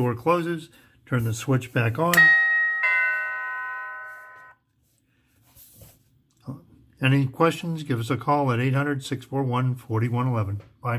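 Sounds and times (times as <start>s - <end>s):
doorbell chime: 2.1s - 4.6s.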